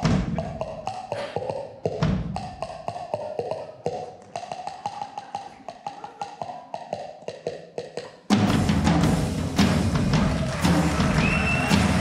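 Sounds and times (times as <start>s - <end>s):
jazz drum solo: 8.3s - 12.0s.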